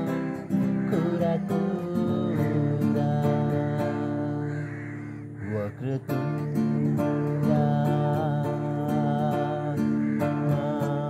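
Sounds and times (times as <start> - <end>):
acoustic guitar chord ringing: 0.0 - 11.0.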